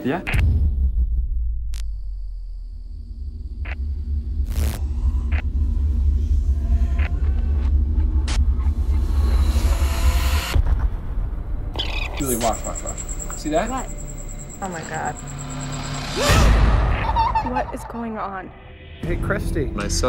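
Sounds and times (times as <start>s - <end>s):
deep rumbling drone: 1.0s - 20.0s.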